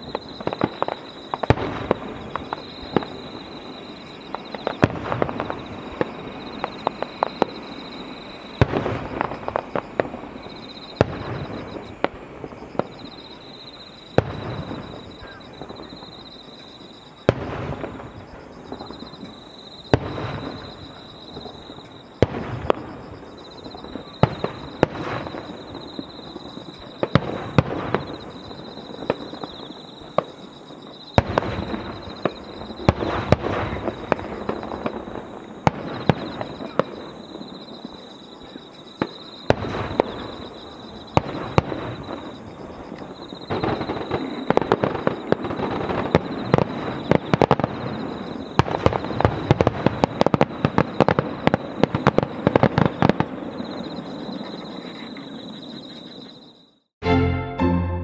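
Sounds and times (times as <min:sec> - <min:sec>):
firework shells booming: 0:00.0 - 0:56.0
firework crackling: 0:00.0 - 0:56.2.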